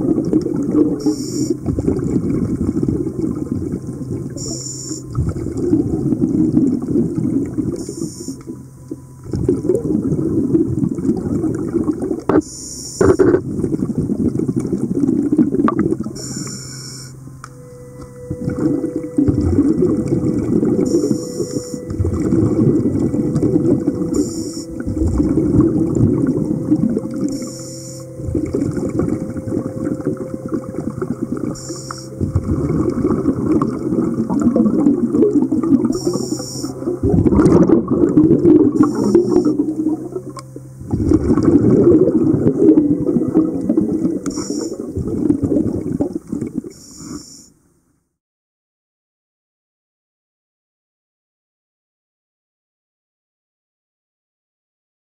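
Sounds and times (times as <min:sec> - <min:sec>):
exhaled air bubbling: 0:00.0 - 0:47.4
faint steady hum: 0:00.0 - 0:48.2
regulator inhalation hiss: 0:01.0 - 0:01.6, 0:07.8 - 0:08.4, 0:16.2 - 0:17.1, 0:24.2 - 0:24.8, 0:27.3 - 0:28.1, 0:31.6 - 0:32.2, 0:36.0 - 0:36.8, 0:38.8 - 0:39.7, 0:44.3 - 0:44.9, 0:46.8 - 0:47.5.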